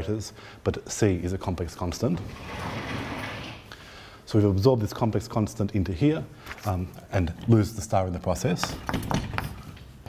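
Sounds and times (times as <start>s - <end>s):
chalkboard panel sliding: 2.2s - 3.7s.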